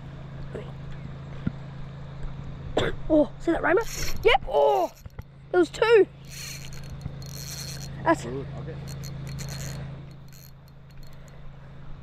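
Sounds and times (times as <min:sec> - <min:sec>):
steady low hum: 0:00.0 - 0:12.0
fishing reel whirring: 0:03.6 - 0:05.2, 0:06.2 - 0:11.4.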